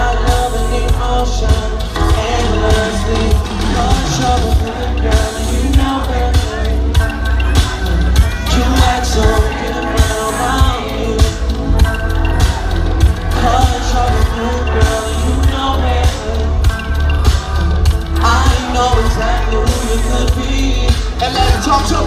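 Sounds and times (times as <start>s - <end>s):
live hip-hop music with heavy bass: 0.0s - 22.0s
vocals over beat: 0.0s - 22.0s.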